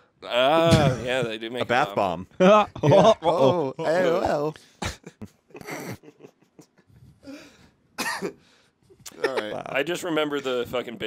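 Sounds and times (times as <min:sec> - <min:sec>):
man coughing: 0:08.0 - 0:08.4.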